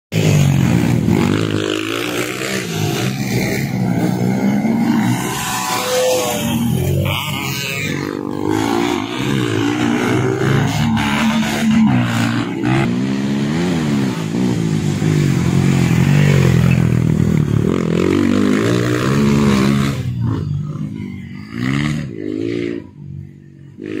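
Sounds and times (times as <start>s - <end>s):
dirt bike engine revving: 0.1s - 24.0s.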